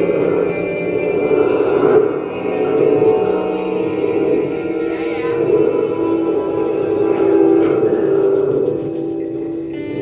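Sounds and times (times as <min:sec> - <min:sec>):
electric guitar: 0:00.0 - 0:10.0
hand shaker: 0:00.0 - 0:10.0.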